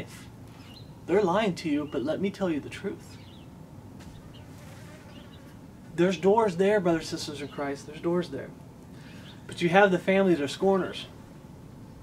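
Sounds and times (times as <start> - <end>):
faint insect buzz: 4.0 - 5.6.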